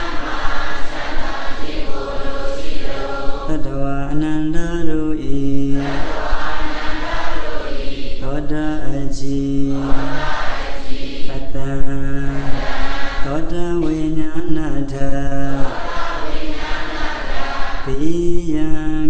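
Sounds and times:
man chanting into microphone: 3.4 - 6.8, 8.2 - 10.3, 11.3 - 15.7, 17.8 - 19.0.

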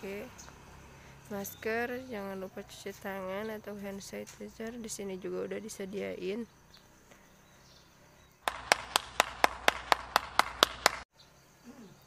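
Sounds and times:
sharp percussive hits: 8.4 - 11.0.

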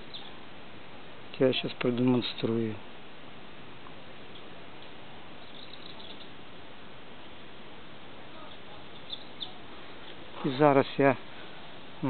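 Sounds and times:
bird chirps: 0.0 - 0.4, 4.3 - 6.4, 8.4 - 9.6
steady background hiss: 0.0 - 12.0.

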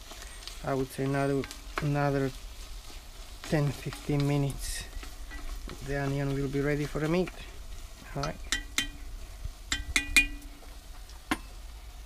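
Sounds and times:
wooden spoon clinking on pot: 8.2 - 9.0, 9.7 - 10.6.

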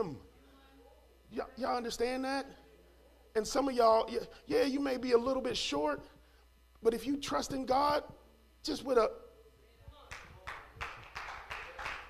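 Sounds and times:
rhythmic hand clapping: 10.0 - 12.0.

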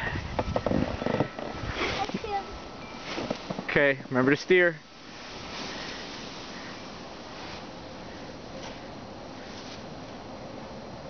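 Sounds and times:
plastic sled sliding on snow: 0.0 - 2.4, 5.0 - 9.9
snow crunching: 0.8 - 10.2
feet scuffing snow: 5.1 - 7.8.

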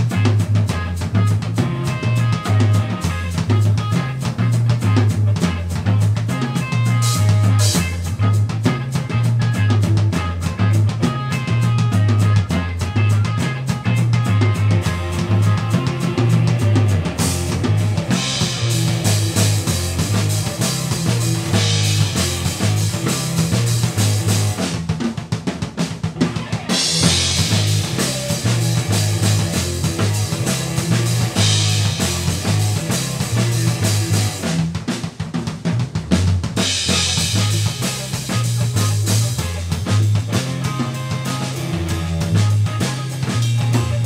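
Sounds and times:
electric bass pulsing low notes: 0.0 - 24.7, 26.8 - 34.6
electric guitar: 0.0 - 35.0, 35.7 - 44.0
drum kit: 0.0 - 44.0.

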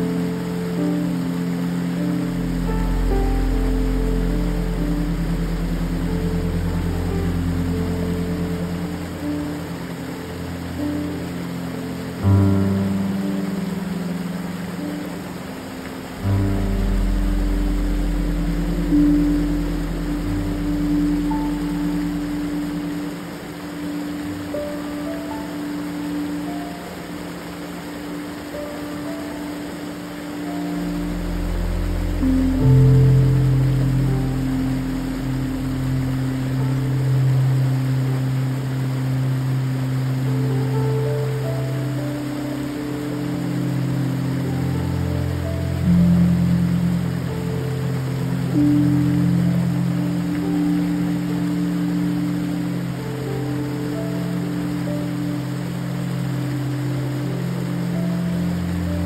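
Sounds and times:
creek waterfall rushing: 0.0 - 59.0
slow ambient synth music: 0.0 - 59.0.

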